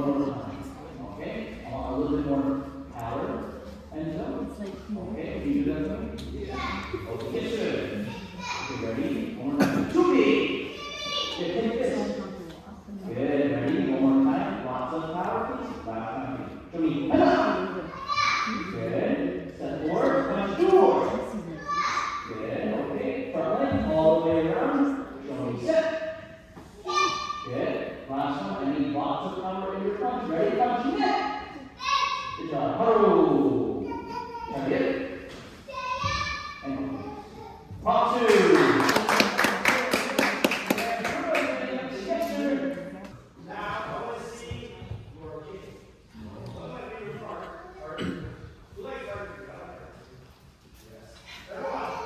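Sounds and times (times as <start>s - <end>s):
indistinct voices in large room: 0.0s - 52.0s.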